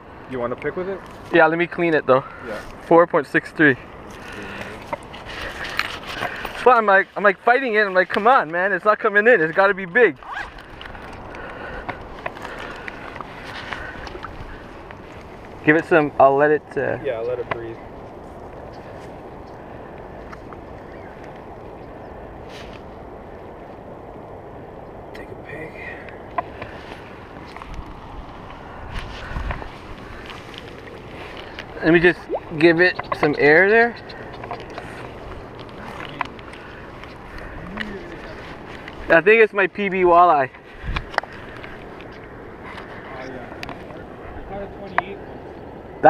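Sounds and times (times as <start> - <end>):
wind: 0.0 - 46.0.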